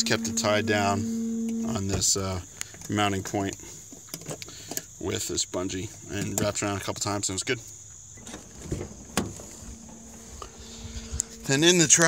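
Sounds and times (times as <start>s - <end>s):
faint low hum: 0.0s - 3.8s, 8.1s - 12.0s.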